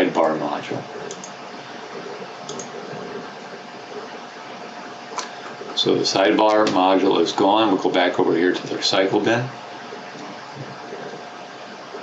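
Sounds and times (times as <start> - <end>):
faint constant tone: 0.0 - 12.0.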